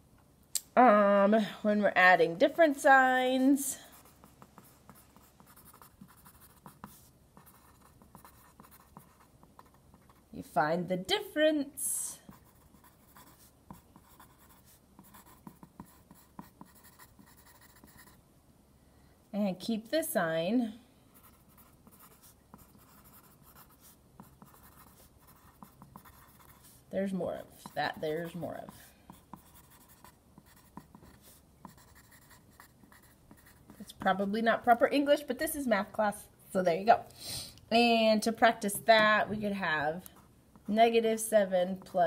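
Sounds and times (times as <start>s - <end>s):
pencil scratching on paper: 2.5s - 10.2s, 12.2s - 18.2s, 21.1s - 34.8s.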